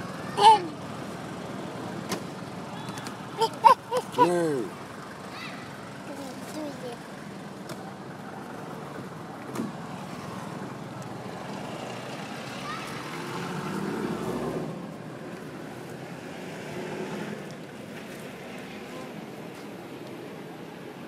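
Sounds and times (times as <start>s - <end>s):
motor vehicle passing: 0.0s - 18.8s
steady outdoor hiss: 0.0s - 21.0s.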